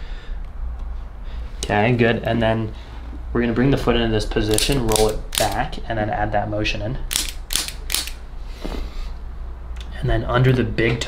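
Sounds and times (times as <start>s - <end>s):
sharp mechanical clicks: 4.5s - 5.7s, 7.1s - 8.2s.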